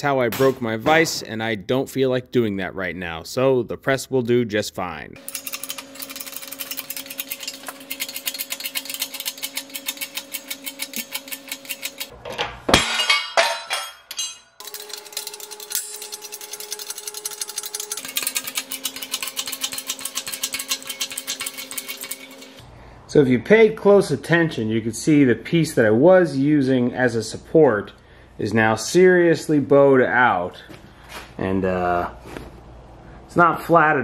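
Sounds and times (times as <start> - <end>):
fast metallic clicking: 5.2 - 12.1, 14.6 - 22.6
loud metal clanking: 12.3 - 15.0.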